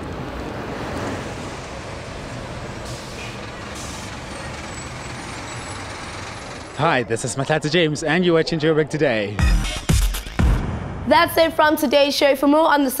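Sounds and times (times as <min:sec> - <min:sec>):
heavy vehicle engine running: 0:00.0 - 0:06.9
city street traffic: 0:00.0 - 0:09.4.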